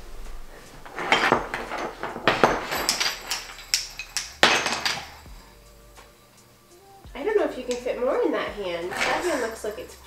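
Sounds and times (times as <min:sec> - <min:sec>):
toy blocks knocking and clattering: 0:00.9 - 0:05.2.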